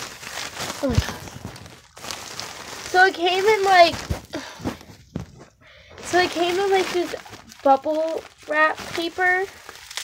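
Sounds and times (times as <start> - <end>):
bubble wrap rustling: 0.0 - 10.0
soft handling thumps and knocks: 3.8 - 5.6.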